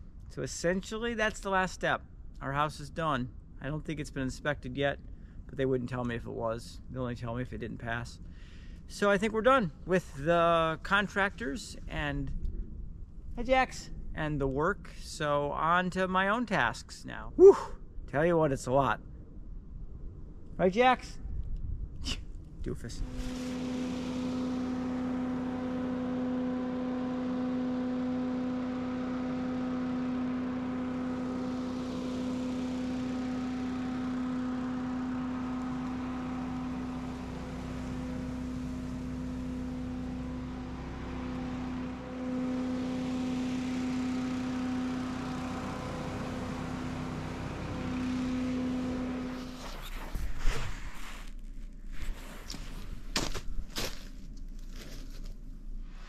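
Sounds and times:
leaf blower running: 22.9 - 49.8.

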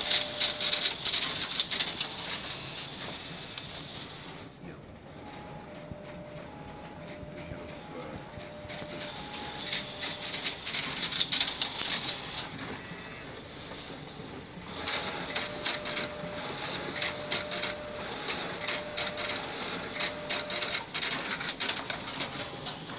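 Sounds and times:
copier clicking and rustling paper: 0.0 - 22.9
faint motor whine: 2.0 - 22.9.

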